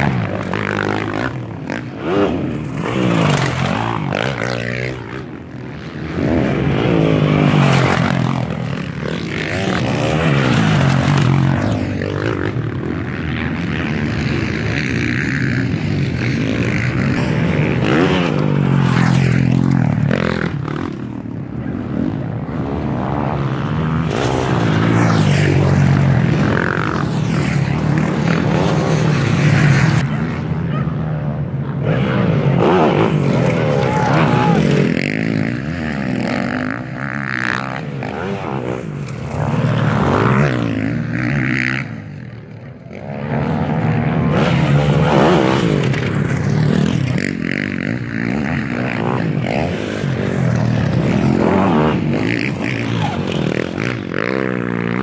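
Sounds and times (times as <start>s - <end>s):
motocross bike engines revving: 0.0s - 55.0s.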